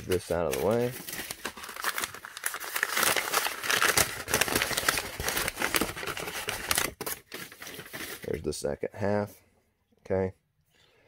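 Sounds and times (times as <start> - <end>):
paper crinkling and rustling: 0.0 - 8.6.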